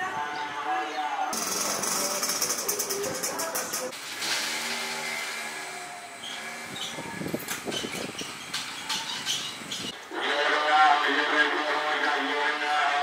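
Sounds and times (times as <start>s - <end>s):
people's voices: 0.0s - 4.0s, 10.0s - 13.0s
vehicle engine running: 1.4s - 4.0s.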